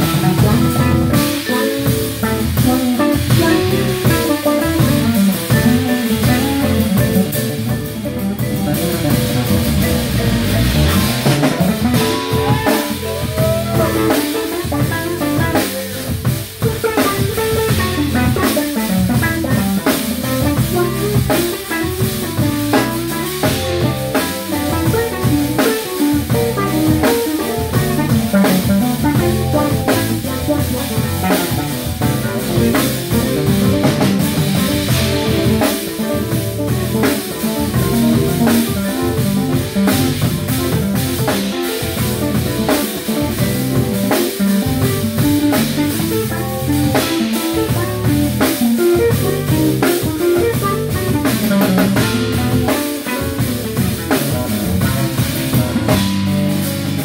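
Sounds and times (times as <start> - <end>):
vibraphone notes: 0.0 - 18.6
drum kit: 0.0 - 57.0
electric bass: 0.0 - 57.0
keyboards: 0.0 - 57.0.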